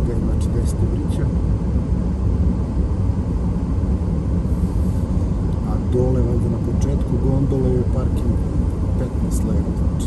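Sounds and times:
car interior road rumble: 0.0 - 10.0.

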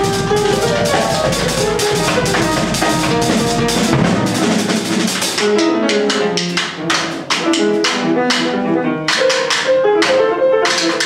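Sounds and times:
piano notes: 0.0 - 11.0.

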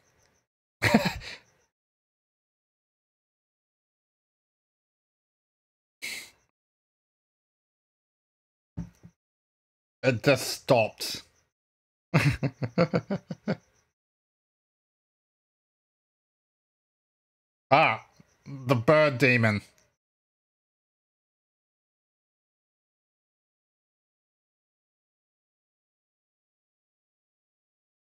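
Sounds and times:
man laughing: 0.8 - 1.5, 12.2 - 13.7
man's breathy vocal burst: 6.0 - 6.4.

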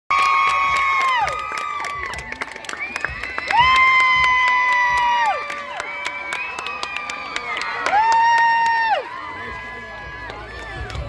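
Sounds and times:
sharp claps: 0.1 - 9.0.

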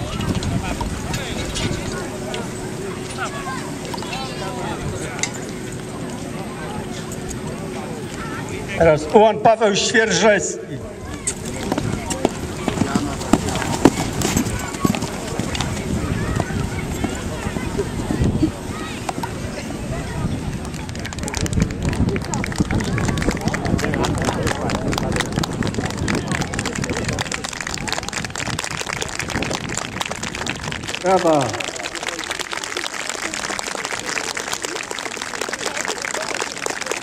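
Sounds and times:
murmur of crowd: 0.0 - 37.0
horse hoofbeats on grass: 11.2 - 18.2.

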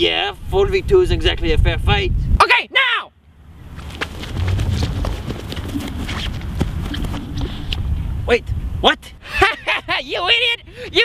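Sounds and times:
many running footsteps: 3.7 - 7.7.

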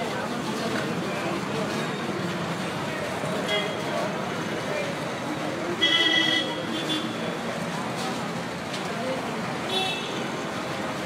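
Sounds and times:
crowd chatter: 0.0 - 11.0
road traffic noise: 0.0 - 11.0.

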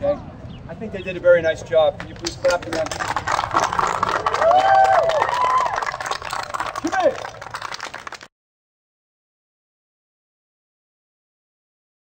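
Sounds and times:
crowd applauding: 2.0 - 8.3.

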